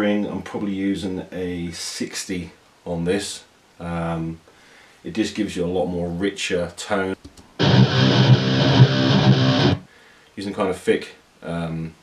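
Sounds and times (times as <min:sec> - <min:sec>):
distorted electric guitar chord: 0:07.6 - 0:09.8.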